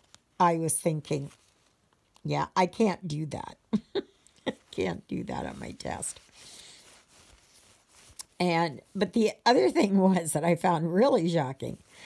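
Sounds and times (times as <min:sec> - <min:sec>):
soft rustling of canvas and thread: 0:00.0 - 0:12.0.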